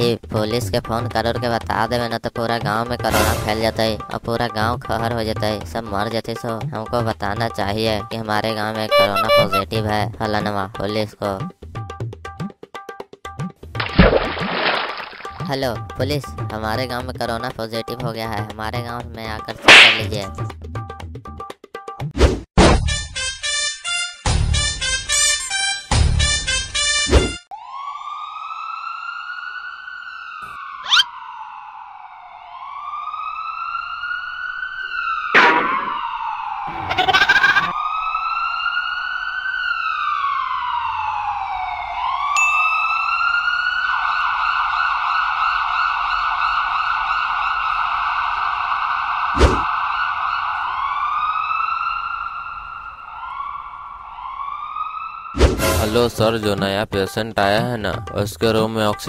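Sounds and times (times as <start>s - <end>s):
emergency siren wailing: 8.6s - 9.7s, 27.5s - 56.2s
brief sharp swishes: 19.6s - 20.1s, 49.4s - 49.7s.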